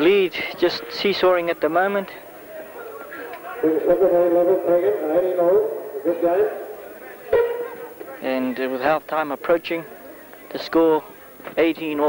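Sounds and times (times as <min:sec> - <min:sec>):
man talking: 0:03.6 - 0:06.9.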